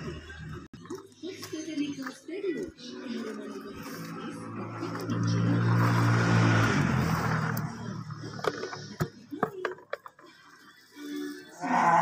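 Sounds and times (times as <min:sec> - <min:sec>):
low engine hum: 0:03.5 - 0:09.0.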